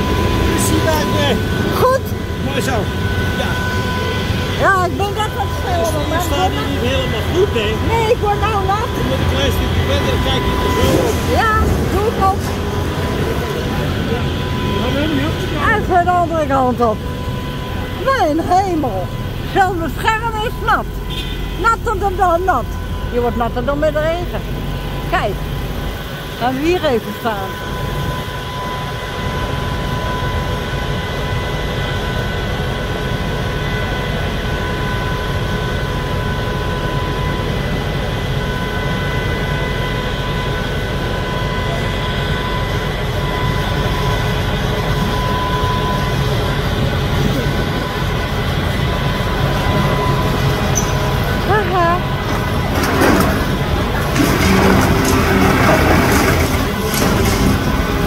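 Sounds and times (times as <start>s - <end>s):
excavator engine and hydraulics: 0.0s - 58.0s
rubble falling: 52.3s - 58.0s.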